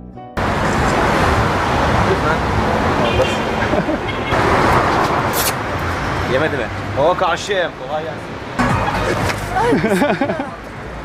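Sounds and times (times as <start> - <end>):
traffic noise: 0.4 - 11.0.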